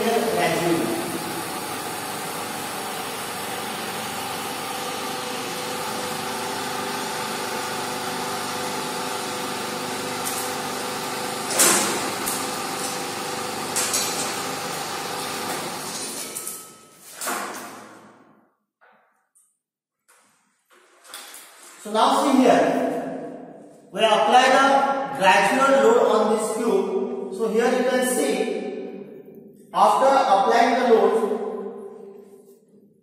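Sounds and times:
hydraulic pump humming: 0.0s - 16.1s.

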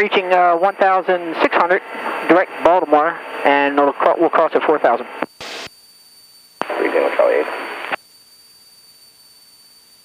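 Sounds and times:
radio speech: 0.0s - 5.6s, 6.6s - 8.0s
low steady hiss: 5.4s - 10.0s
radio click: 6.6s - 8.0s.

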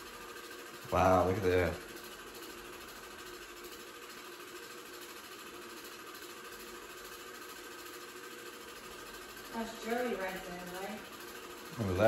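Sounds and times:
film projector whirring: 0.0s - 12.0s.

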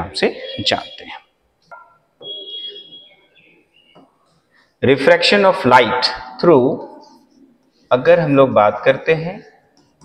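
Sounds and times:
faint bird chirping: 0.0s - 4.8s.

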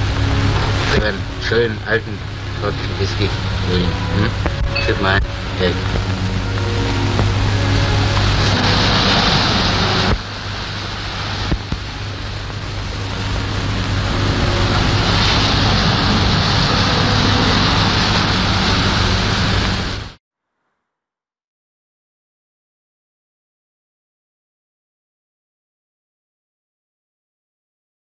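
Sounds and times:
faint music: 0.0s - 20.1s
steady low hum: 0.0s - 20.2s
surf washing in: 0.0s - 20.2s.

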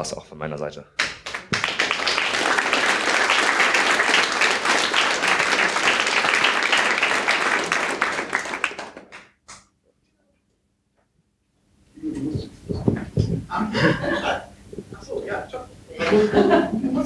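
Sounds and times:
lone hand clap: 1.0s - 9.7s
audience applause: 1.2s - 9.3s.

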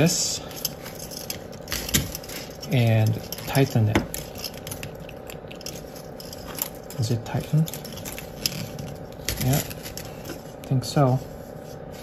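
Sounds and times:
wire ends twisting together: 0.0s - 10.8s
faint clicks and scratches: 0.4s - 12.0s.

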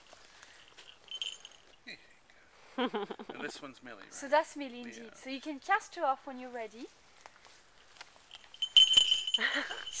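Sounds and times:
small bells jingling: 0.5s - 1.9s, 8.2s - 10.0s.

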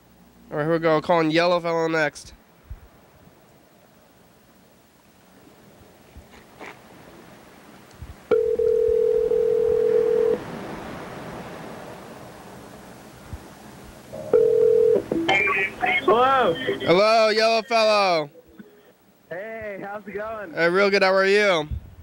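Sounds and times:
telephone ringback tone: 8.3s - 10.4s, 14.2s - 15.7s
phone line hiss: 8.3s - 10.6s, 14.1s - 18.9s.

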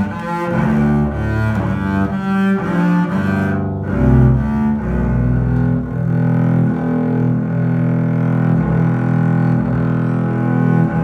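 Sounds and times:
bowed double bass: 0.0s - 11.0s.

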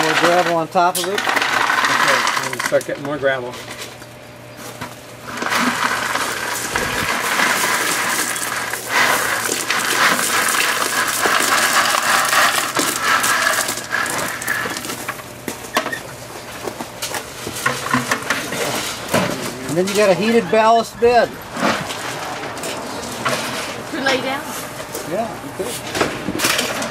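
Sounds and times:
gravel pouring from a bucket: 0.0s - 3.0s, 5.2s - 15.2s.

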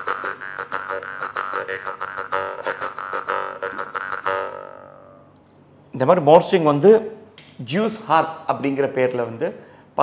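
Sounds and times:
jaw harp plucked rhythmically: 0.0s - 5.2s.

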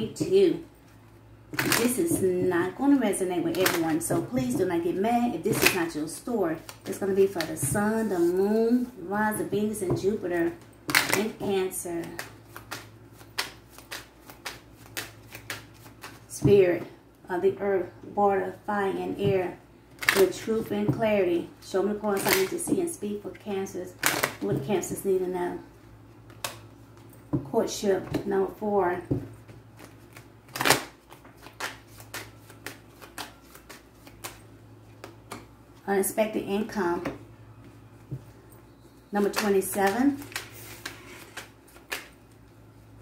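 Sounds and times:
cards being shuffled: 12.0s - 16.3s, 29.8s - 35.4s, 39.3s - 42.5s.

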